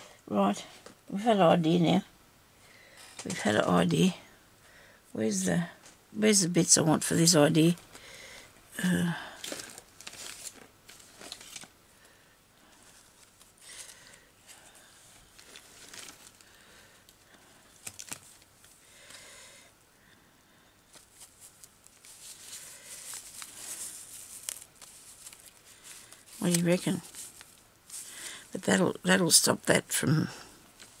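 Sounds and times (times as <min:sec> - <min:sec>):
paper rustling and crinkling: 0:09.2 - 0:11.8, 0:12.6 - 0:19.2, 0:20.9 - 0:28.3, 0:30.7 - 0:31.0.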